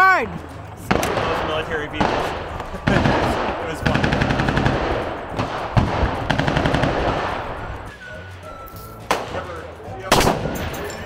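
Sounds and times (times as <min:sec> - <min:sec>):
sharp gunshot bangs: 0:00.8 - 0:07.6, 0:10.1 - 0:10.8
automatic gunfire bursts: 0:00.9 - 0:07.5.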